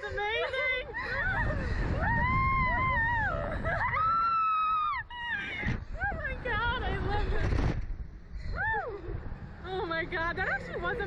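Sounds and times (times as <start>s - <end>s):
wind rumble on microphone: 0.0s - 11.0s
people screaming: 1.0s - 5.8s.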